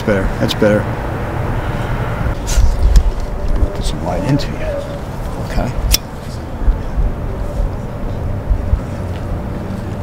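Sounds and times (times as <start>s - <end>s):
low outdoor rumble: 0.0s - 10.0s
low bump or gust: 1.8s - 5.9s.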